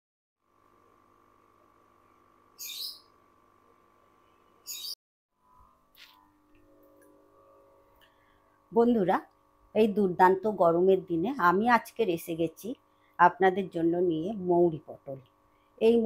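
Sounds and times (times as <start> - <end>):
faint steady hum: 0.5 - 4.7, 5.4 - 16.0
high bird chirps: 2.6 - 3.1, 4.6 - 5.0.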